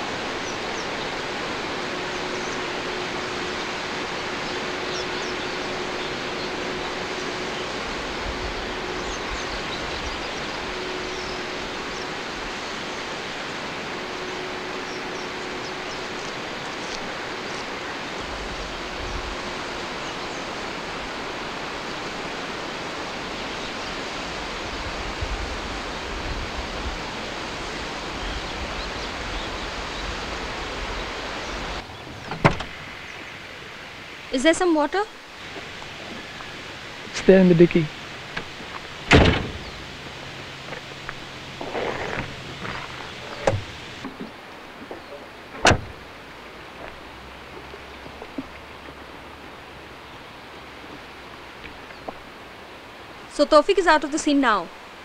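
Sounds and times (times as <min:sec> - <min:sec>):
even rushing noise: 0:00.0 - 0:44.8.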